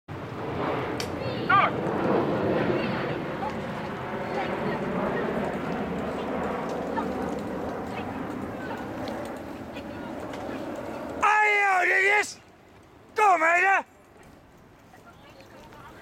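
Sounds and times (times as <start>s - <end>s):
people calling out: 1.2s - 1.8s, 13.2s - 13.9s.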